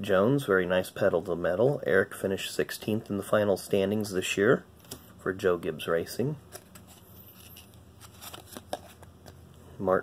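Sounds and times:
cards rustling: 6.4s - 9.5s.

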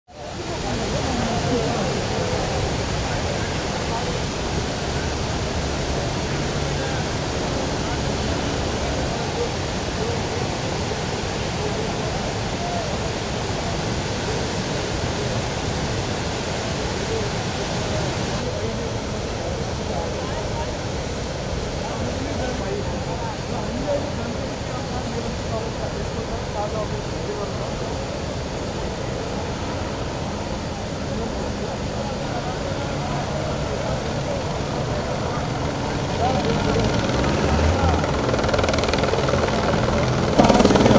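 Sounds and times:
floodwater rushing: 0.1s - 40.9s.

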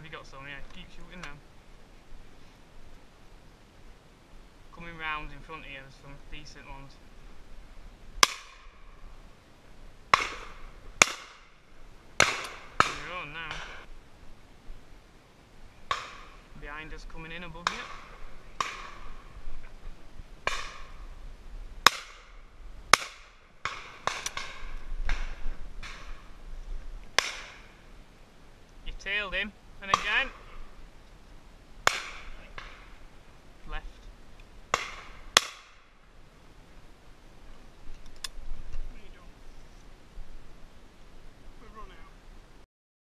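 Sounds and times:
shotguns firing: 10.1s - 11.6s, 12.2s - 13.8s, 17.6s - 19.3s, 20.4s - 21.0s, 21.8s - 26.3s, 27.2s - 27.8s, 31.8s - 33.0s.

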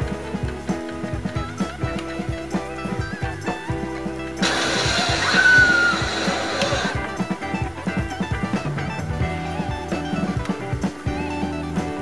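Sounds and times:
film soundtrack music: 0.0s - 12.0s
rushing noise with whistling tone: 4.4s - 7.4s.

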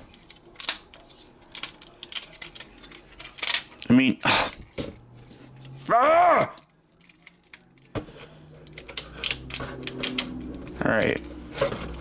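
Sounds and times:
plastic toy parts clicking: 0.1s - 3.8s, 6.6s - 11.4s.

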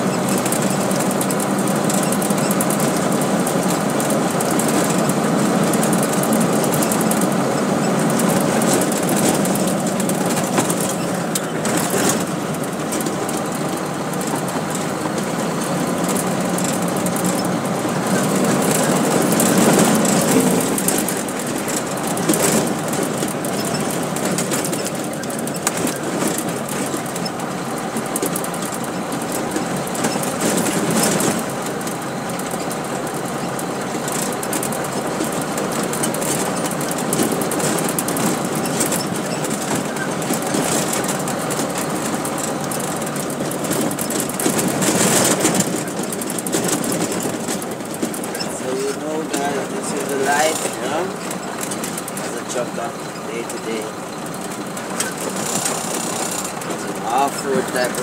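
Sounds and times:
road noise: 0.0s - 58.0s
truck engine running: 0.0s - 58.0s
rattling: 0.2s - 58.0s.

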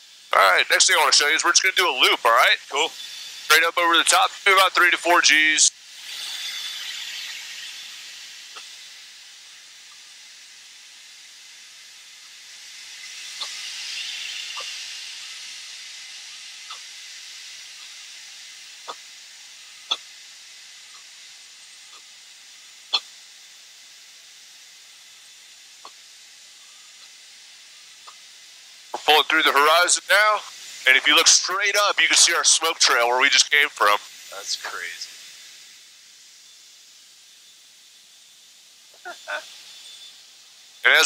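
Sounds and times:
intercom hiss: 0.0s - 24.1s, 24.8s - 41.0s.

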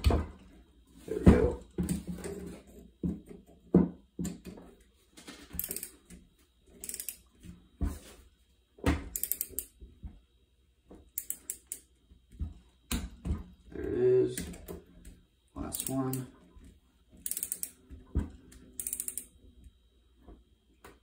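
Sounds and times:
torque wrench ratcheting clicks: 5.6s - 6.0s, 6.8s - 7.2s, 9.1s - 9.7s, 11.2s - 11.8s, 15.7s - 16.2s, 17.2s - 17.8s, 18.8s - 19.3s.

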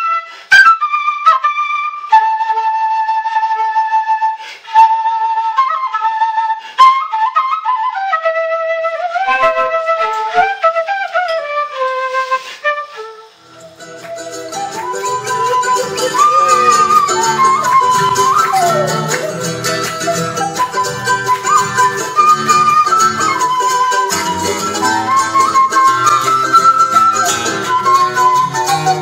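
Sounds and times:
end-blown flute melody: 0.0s - 29.0s.

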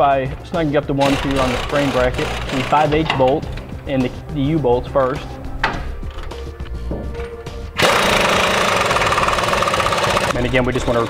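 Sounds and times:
impact wrench hammering: 1.0s - 3.3s, 7.8s - 10.4s.

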